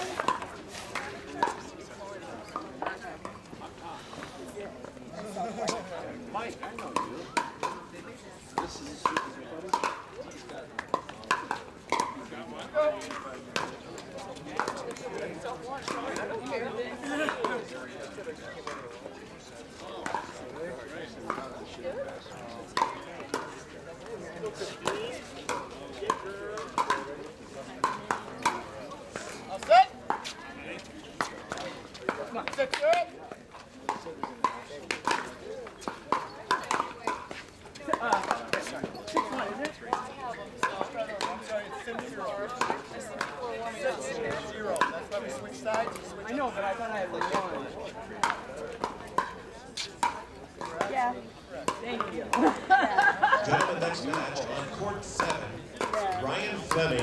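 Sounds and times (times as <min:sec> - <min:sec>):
crowd chatter: 0:00.0 - 0:57.0.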